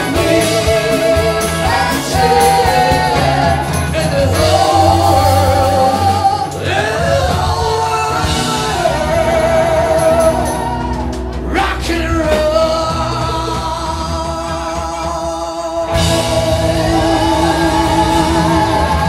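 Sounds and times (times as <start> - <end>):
backing singers: 0.0 - 19.0
bass guitar: 0.0 - 19.0
drums: 0.0 - 19.0
electric guitar: 0.0 - 19.0
keyboards: 0.0 - 19.0
lead singer singing: 0.0 - 19.0.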